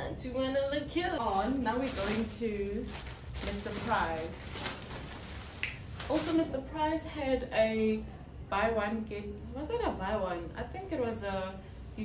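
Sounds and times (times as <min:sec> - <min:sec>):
plastic bag rustling: 0:00.9 - 0:06.7.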